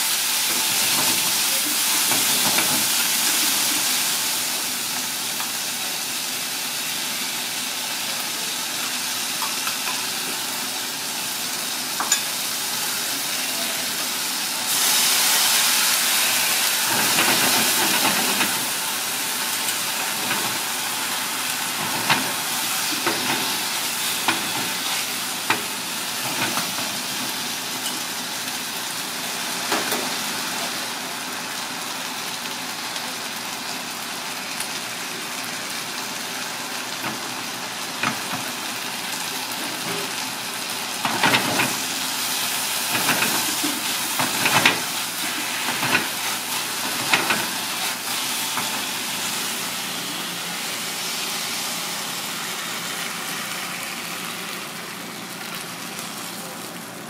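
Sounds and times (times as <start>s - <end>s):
food sizzling in a wok: 0.0s - 57.0s.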